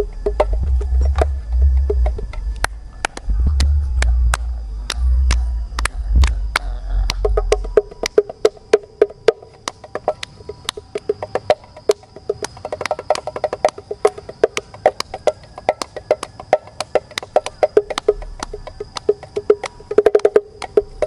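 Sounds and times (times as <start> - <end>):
bongos played by hand: 0.0 - 21.0.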